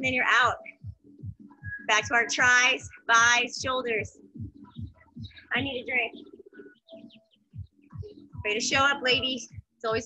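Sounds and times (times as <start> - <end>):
soft low thuds: 0.0 - 10.0.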